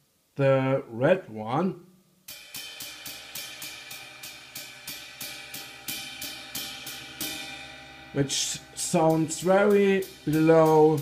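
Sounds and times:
drum brush on cymbal: 2.2s - 11.0s
cymbal ringing: 2.3s - 11.0s.

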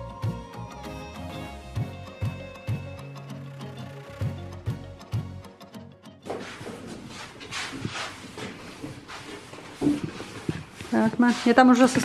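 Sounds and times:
footsteps: 6.2s - 12.0s.

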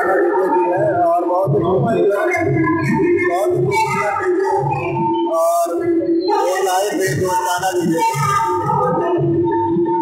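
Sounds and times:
loud dj music over loudspeakers: 0.0s - 10.0s.

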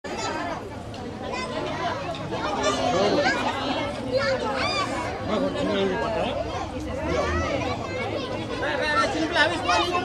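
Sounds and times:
children and adults chattering: 0.0s - 10.0s.

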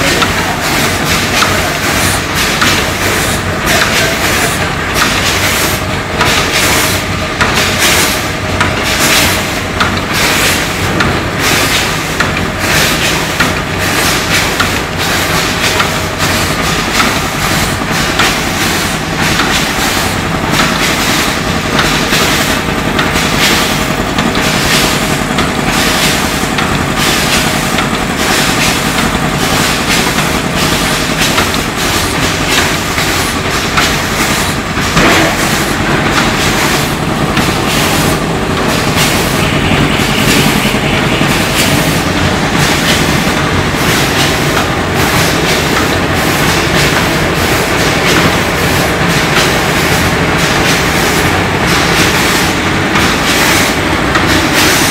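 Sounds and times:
machine hum: 0.0s - 54.9s
packing machine clatter: 0.0s - 54.9s.

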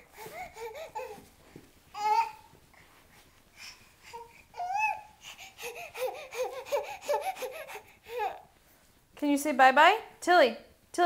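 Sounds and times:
baby babbling: 4.0s - 8.5s.

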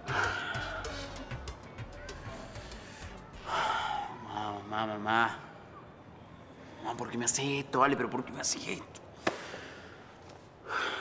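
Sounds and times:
man's loud distressed breath: 0.0s - 1.4s.

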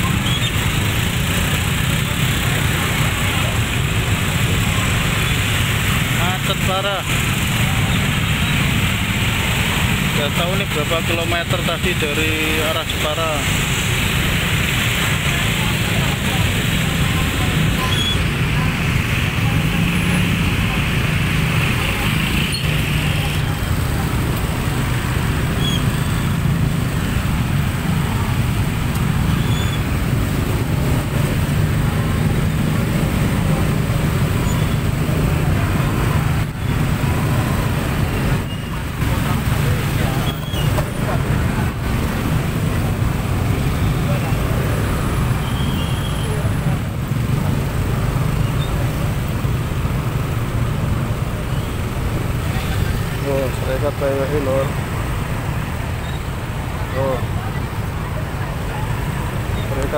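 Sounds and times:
motor scooter engines humming: 0.0s - 59.9s.

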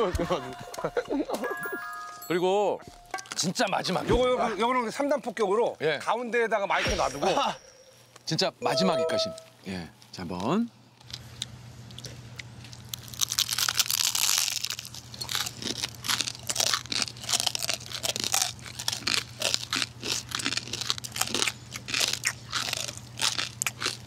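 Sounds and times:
crunching of crispy fried food: 11.0s - 24.0s.

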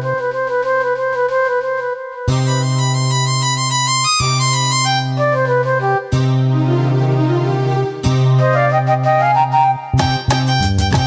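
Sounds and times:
karaoke backing track chords: 0.0s - 11.0s.

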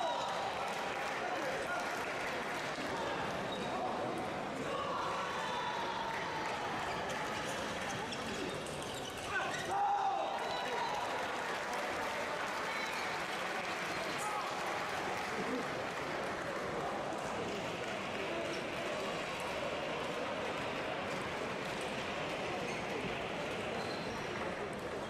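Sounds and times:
crowd chatter in a large hall: 0.0s - 25.0s.

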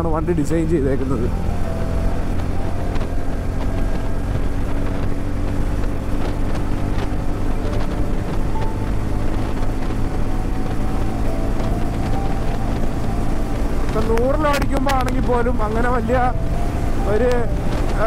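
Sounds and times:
motorcycle engine running: 0.0s - 18.0s
wind noise on microphone: 1.0s - 18.0s.

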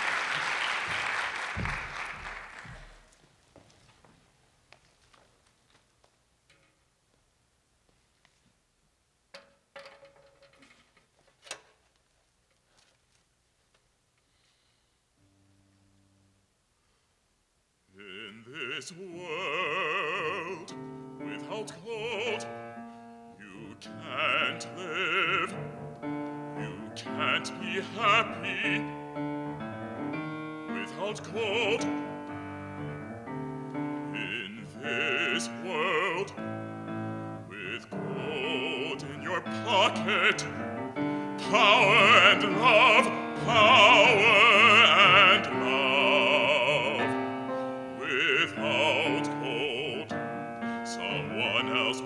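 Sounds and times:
man singing opera: 17.9s - 32.8s, 33.8s - 52.0s
grand piano chords: 19.2s - 52.0s.

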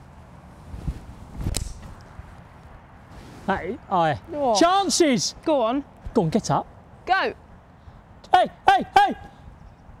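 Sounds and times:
wind rumble on microphone: 0.0s - 3.5s.

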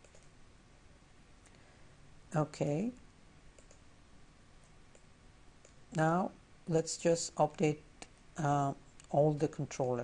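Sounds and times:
faint computer mouse clicks: 0.0s - 0.3s, 3.5s - 3.8s, 4.9s - 5.8s.

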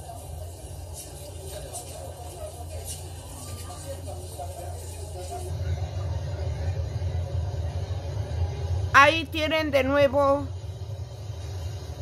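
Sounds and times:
faint voices: 0.0s - 10.4s.

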